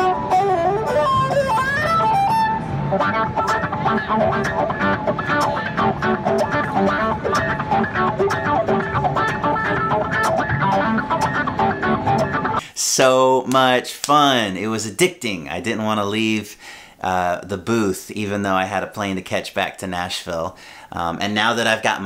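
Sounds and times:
bowed electric violin: 0.0s - 12.6s.

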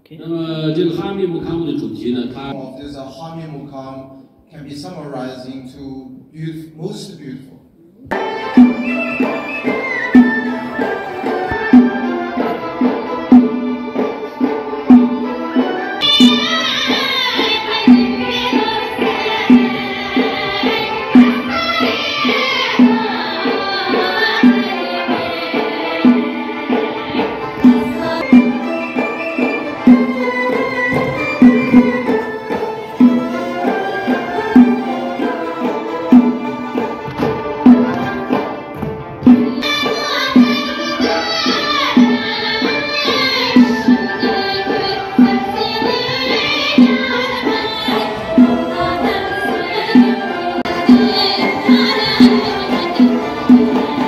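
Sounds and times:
frame drum beats: 8.0s - 54.0s
string melody: 8.1s - 54.0s.

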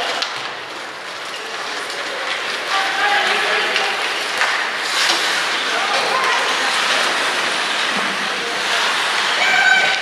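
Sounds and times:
hockey sticks and puck clacking: 0.0s - 10.0s
spectators' voices: 0.0s - 10.0s
skates hissing on ice: 4.0s - 10.0s.

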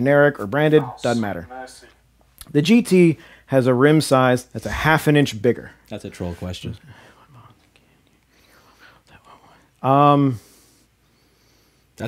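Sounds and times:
man saying um: 0.6s - 2.0s.

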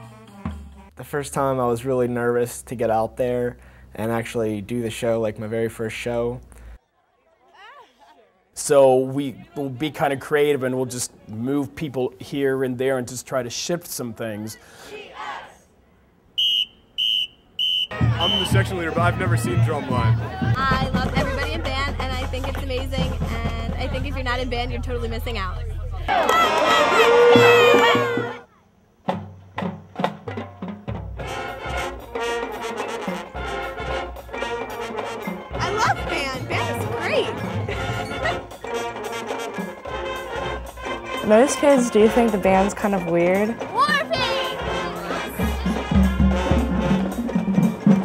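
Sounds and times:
brass and drums playing: 0.0s - 1.5s, 16.4s - 28.4s, 29.0s - 48.0s
drum strokes: 17.9s - 25.4s, 29.0s - 48.0s.

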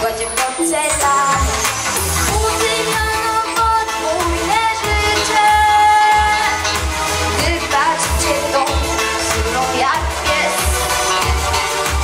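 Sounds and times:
girl singing into a microphone: 0.0s - 1.6s, 2.3s - 6.7s, 7.4s - 10.8s
backing track with bass beat: 0.0s - 12.0s.

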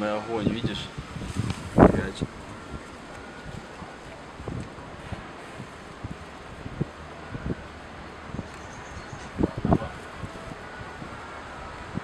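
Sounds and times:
wind rushing over microphone: 0.0s - 12.0s.

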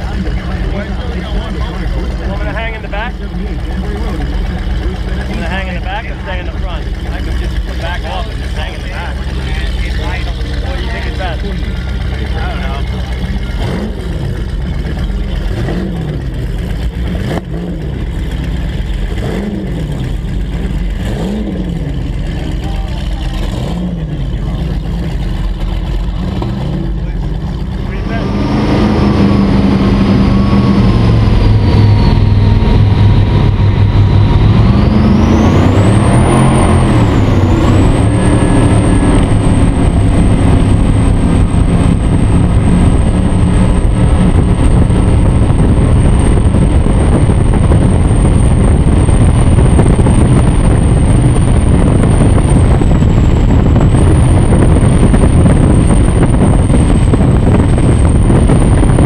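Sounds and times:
boat engines droning: 0.0s - 59.0s
high engine whine: 0.0s - 59.0s.

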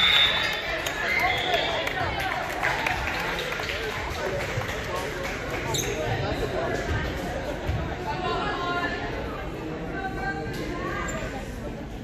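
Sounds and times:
people talking in a gymnasium: 0.0s - 12.0s.

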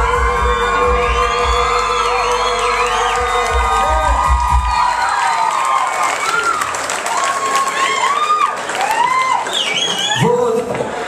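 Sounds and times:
crowd cheering and whistling: 0.0s - 10.4s.

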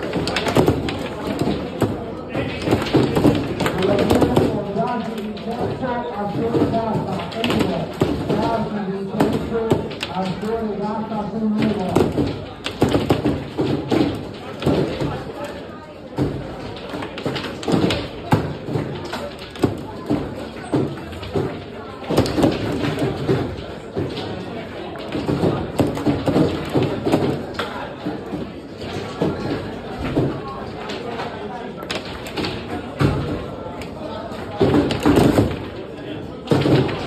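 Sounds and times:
table football knocks and taps: 0.0s - 35.8s, 36.4s - 37.0s
people talking: 0.0s - 37.0s.

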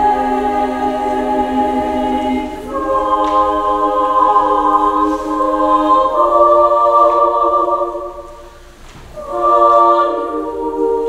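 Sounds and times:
choir singing sustained chords: 0.0s - 11.0s.

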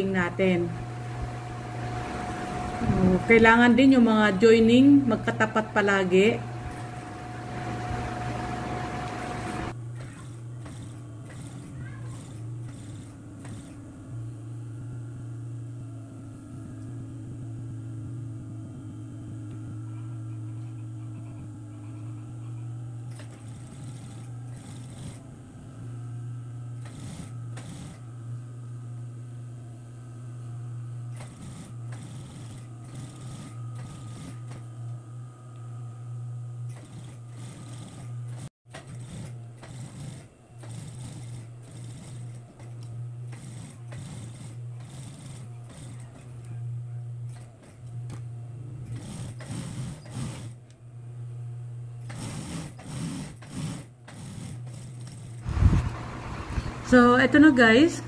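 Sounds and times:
sewing machine stitching fabric: 0.0s - 14.0s, 23.1s - 25.3s, 26.7s - 28.1s, 31.0s - 34.9s, 36.6s - 50.8s, 52.0s - 57.9s
sewing machine motor hum: 0.0s - 58.0s.

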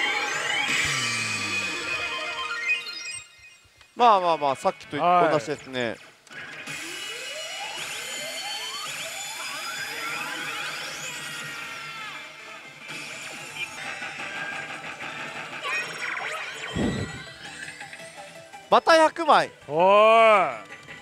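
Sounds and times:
slot machine electronic music: 0.0s - 3.6s, 6.7s - 11.4s, 16.1s - 19.4s
electronic effect sounds: 16.1s - 17.8s
rising electronic sweeps: 16.7s - 17.4s.

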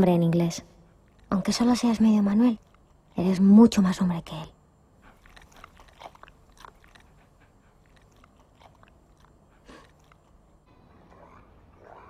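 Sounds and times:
puppy chewing: 0.9s - 3.8s, 4.9s - 12.0s.

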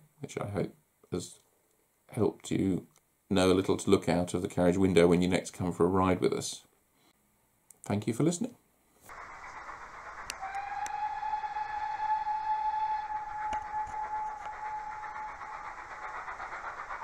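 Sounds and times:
engine rushing noise: 9.1s - 17.0s
steam locomotive whistle: 9.1s - 17.0s.

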